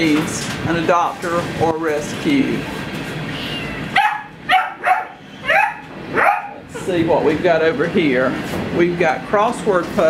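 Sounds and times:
dog barking: 4.0s - 6.6s.

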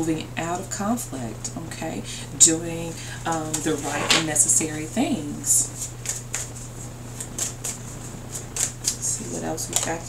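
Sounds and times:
steady low hum: 0.0s - 10.0s
cards being shuffled: 5.8s - 10.0s.

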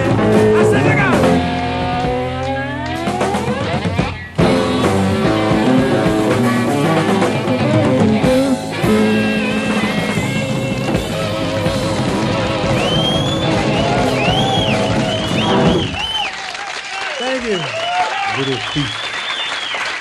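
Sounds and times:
rock band playing: 0.0s - 16.3s
audience cheering and whooping: 9.8s - 20.0s
applause: 10.6s - 20.0s
shrill whistles: 12.7s - 16.4s, 17.0s - 20.0s.

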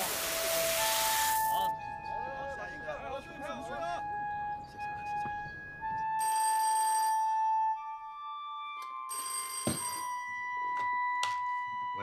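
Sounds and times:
telephone bell ringing: 6.2s - 7.7s, 9.0s - 10.6s.

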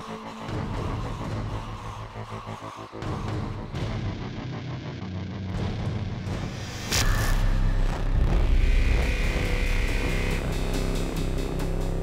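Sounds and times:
low rumbling drone: 3.0s - 12.0s.

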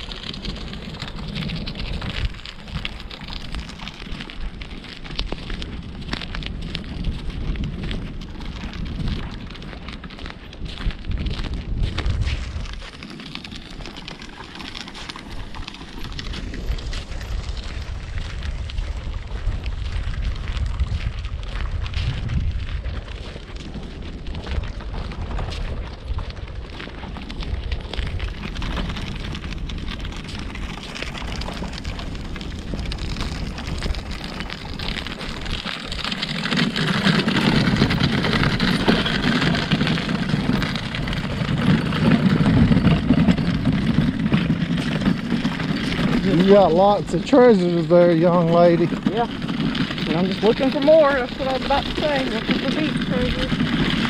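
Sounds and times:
wagon rolling over sand: 0.0s - 54.0s
wind buffeting microphone: 0.0s - 54.0s.

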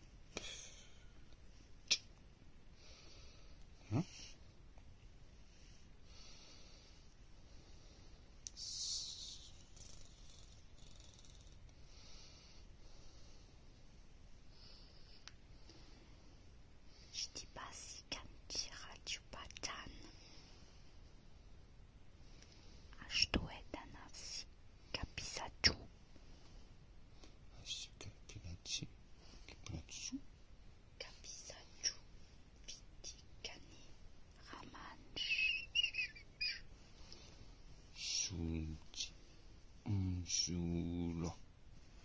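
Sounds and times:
person whispering gibberish: 3.8s - 4.2s, 8.5s - 10.4s, 38.0s - 39.1s, 39.8s - 41.4s
person whispering: 3.8s - 4.4s, 8.5s - 11.3s, 17.0s - 20.2s, 22.9s - 25.9s, 27.5s - 30.3s, 31.0s - 36.6s, 37.9s - 41.4s.

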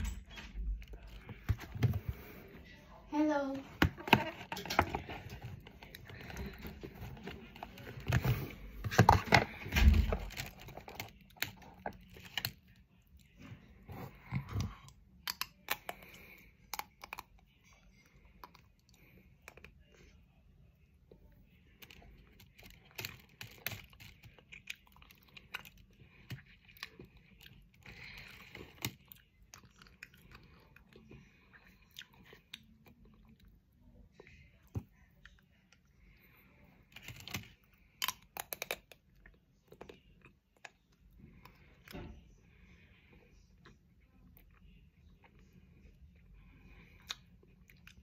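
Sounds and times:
chocolate crunching: 3.9s - 20.4s, 21.6s - 36.2s, 36.8s - 41.9s.

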